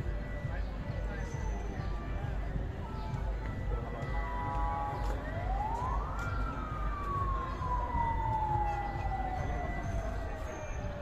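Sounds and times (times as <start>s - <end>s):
busy outdoor background: 0.0s - 11.0s
siren rising and falling: 4.2s - 11.0s.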